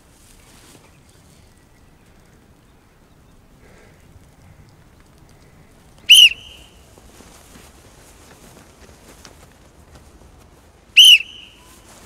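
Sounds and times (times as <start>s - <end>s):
sports whistle blast: 6.1s - 6.7s, 11.0s - 11.8s.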